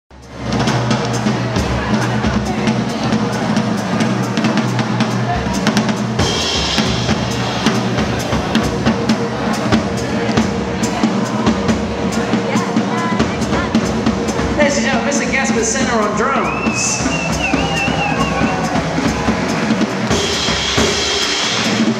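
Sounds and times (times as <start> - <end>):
band music with drum kit: 0.1 - 21.9
person speaking over music: 14.5 - 17.1.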